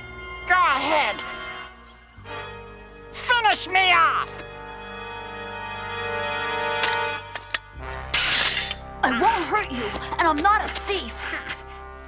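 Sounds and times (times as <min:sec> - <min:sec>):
low musical drone: 0:00.0 - 0:12.0.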